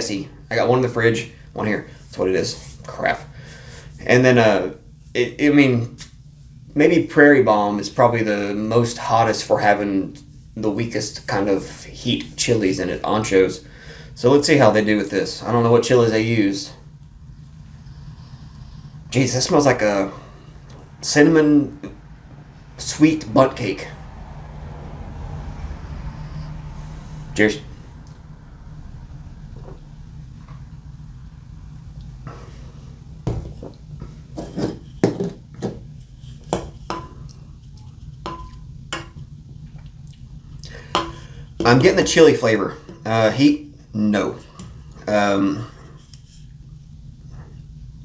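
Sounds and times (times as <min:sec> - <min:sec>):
low background hum: 0:00.0 - 0:48.0
glass ringing: 0:38.3 - 0:39.2.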